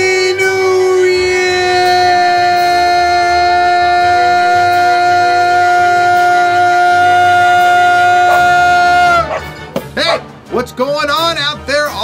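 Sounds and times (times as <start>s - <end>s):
man singing a long note: 0.0s - 9.3s.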